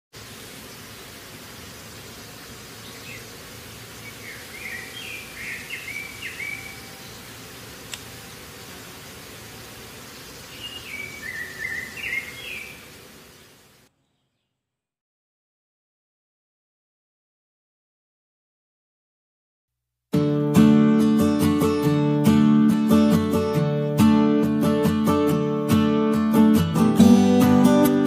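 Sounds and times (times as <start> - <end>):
steady outdoor hiss: 0.1 - 14.6, 20.6 - 28.0
bird chirping: 2.4 - 14.6.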